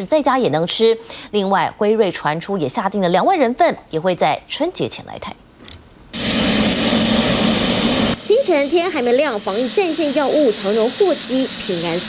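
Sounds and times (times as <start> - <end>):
jet engines running: 6.1 - 12.0.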